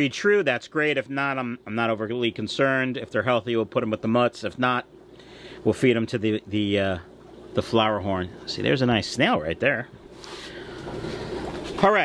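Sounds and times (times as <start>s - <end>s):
filter water gurgling: 1.6s - 12.0s
aquarium air bubbling: 1.7s - 12.0s.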